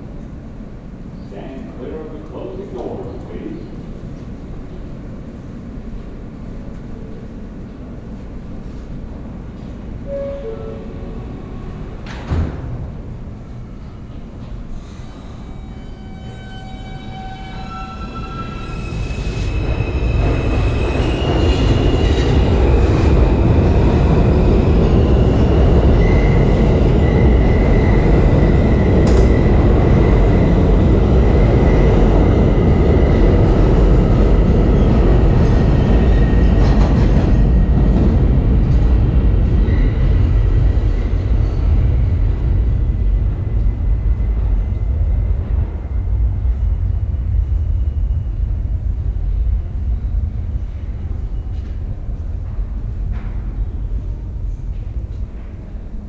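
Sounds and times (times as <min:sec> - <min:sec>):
train wheels rumbling on rails: 0:00.0 - 0:56.0
high-pitched wheel squeal: 0:15.1 - 0:21.2.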